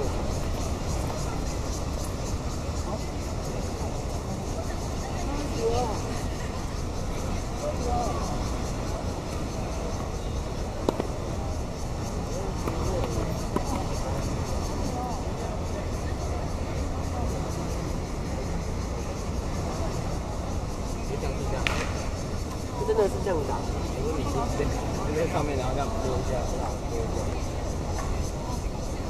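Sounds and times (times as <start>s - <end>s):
voices chattering: 0.0s - 29.0s
tennis ball racket pop: 21.6s - 22.0s.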